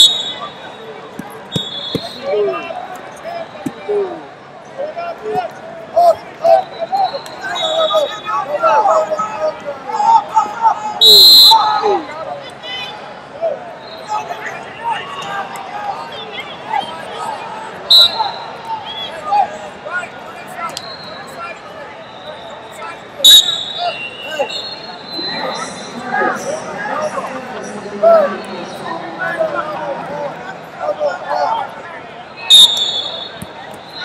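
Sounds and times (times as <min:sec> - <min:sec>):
shrill whistle blast: 0:00.0 - 0:00.9, 0:01.5 - 0:02.3, 0:11.0 - 0:11.6, 0:17.9 - 0:18.4, 0:22.0 - 0:26.0, 0:32.4 - 0:34.0
chatter of voices: 0:00.0 - 0:34.0.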